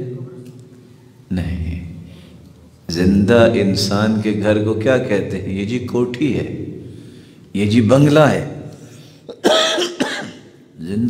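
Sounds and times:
man lecturing: 0.0s - 9.0s, 10.6s - 11.0s
man coughing: 9.3s - 10.6s.

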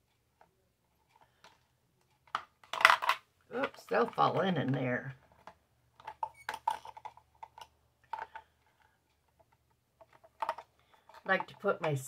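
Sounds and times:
metal tools tapping plastic: 1.1s - 12.0s.

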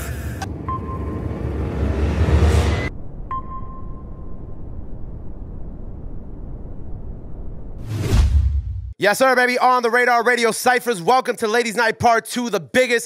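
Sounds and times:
steady low rumble: 0.0s - 8.6s
whoosh: 0.7s - 9.0s.

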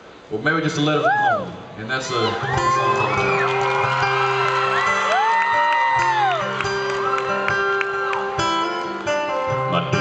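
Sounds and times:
audience whooping and cheering: 2.1s - 9.0s.

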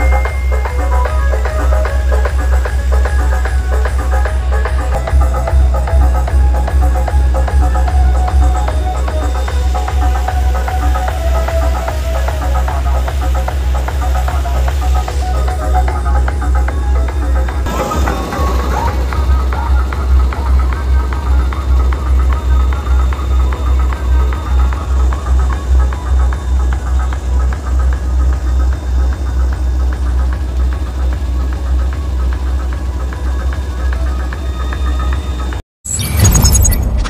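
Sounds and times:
loud dance music with heavy bass: 0.0s - 29.4s.

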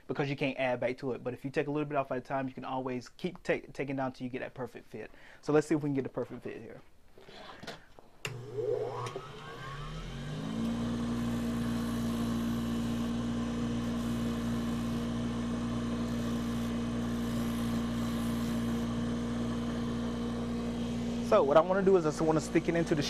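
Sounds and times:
bench grinder motor whine: 8.3s - 23.0s.

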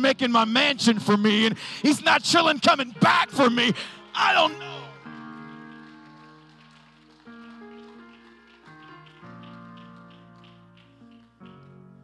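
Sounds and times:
soft electric keyboard chords: 2.9s - 12.0s.

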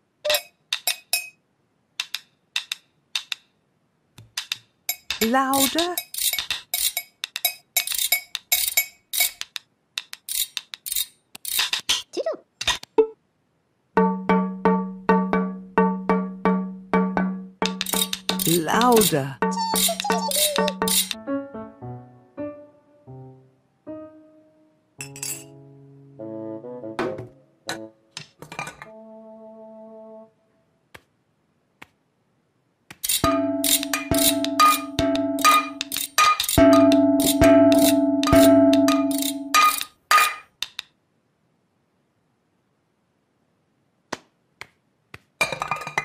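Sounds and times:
playful music: 14.0s - 28.0s, 28.8s - 30.4s, 33.2s - 39.8s
metal saucepans clanging: 25.0s - 25.5s, 28.4s - 28.9s, 33.2s - 40.5s, 45.4s - 46.0s.

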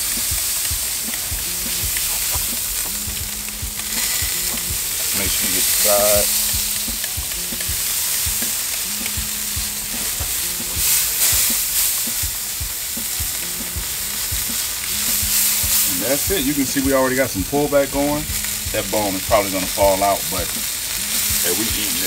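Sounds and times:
meat sizzling on grill: 0.0s - 22.0s.

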